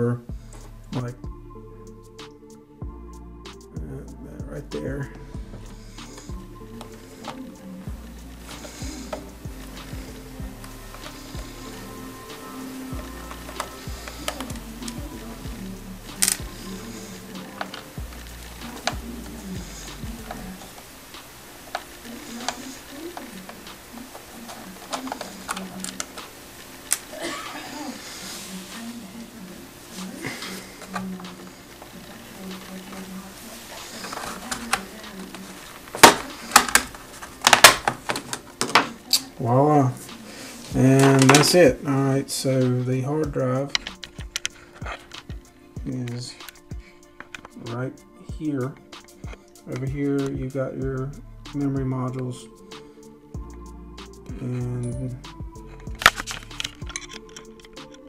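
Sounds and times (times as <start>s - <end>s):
soft background music: 0.0s - 58.0s
loud plastic snaps: 34.0s - 39.3s.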